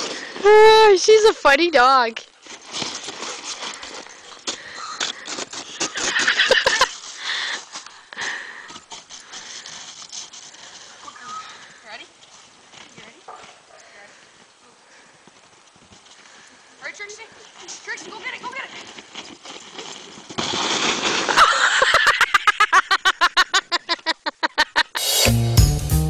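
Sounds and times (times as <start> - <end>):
plastic sled scraping over snow: 0.0 - 11.4, 17.1 - 22.0.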